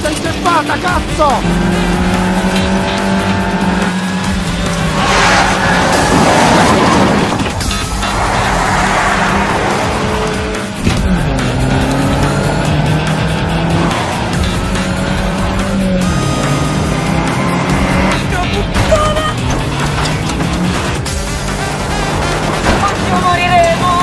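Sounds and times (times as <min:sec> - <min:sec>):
car engine revving: 0:00.0 - 0:24.0
tyres skidding on dirt: 0:00.0 - 0:24.0.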